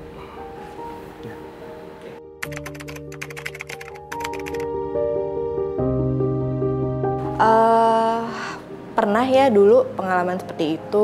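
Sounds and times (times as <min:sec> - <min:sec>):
soft background music: 0:00.0 - 0:11.0
keyboard typing clicks: 0:02.4 - 0:04.7.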